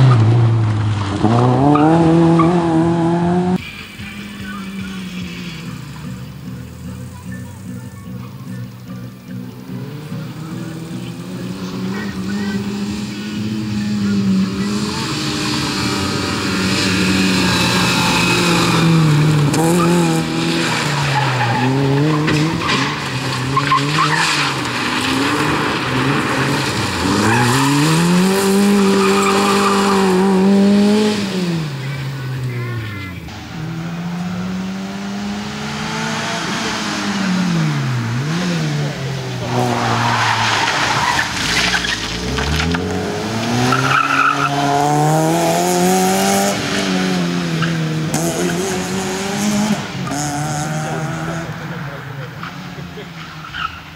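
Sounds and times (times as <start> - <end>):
rally car engine revving: 0.0 - 53.9.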